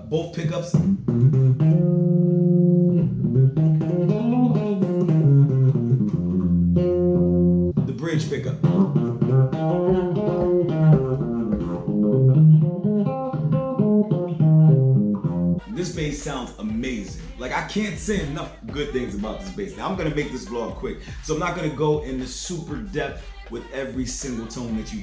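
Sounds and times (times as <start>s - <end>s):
electric bass playing solo: 0.0s - 23.0s.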